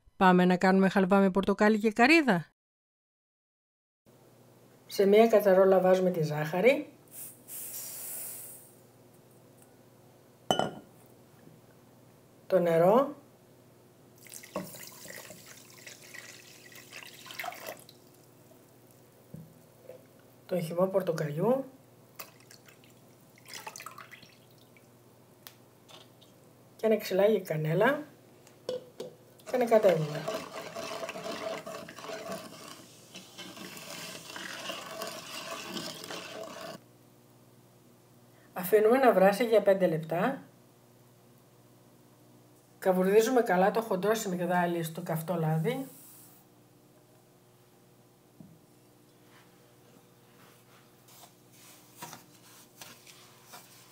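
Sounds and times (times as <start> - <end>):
whisk swishing and scraping pan: 29.5 - 36.8
sugar pouring into a pot: 30.0 - 36.8.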